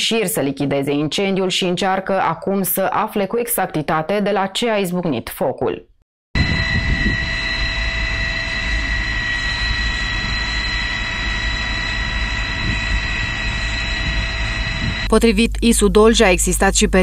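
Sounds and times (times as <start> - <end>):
fire roaring: 6.4 - 15.1
constant high whine: 6.4 - 17.0.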